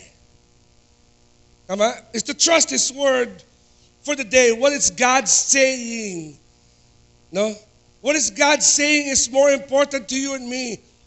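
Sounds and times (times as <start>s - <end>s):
faint mains hum: 0.0s - 11.0s
man speaking: 1.7s - 6.4s, 7.4s - 10.9s.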